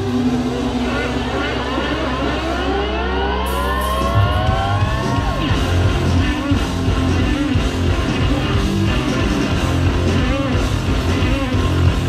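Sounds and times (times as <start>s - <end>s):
electric guitars sliding upward: 0.0s - 12.0s
low bass drone: 0.0s - 12.0s.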